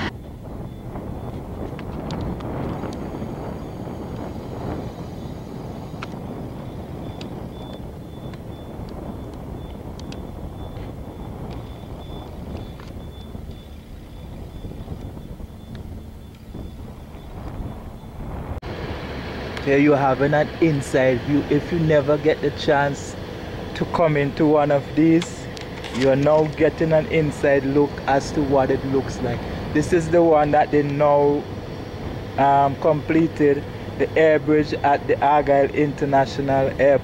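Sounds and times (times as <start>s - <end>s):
wind on microphone: 0.0s - 37.0s
faint clicks: 7.1s - 10.9s.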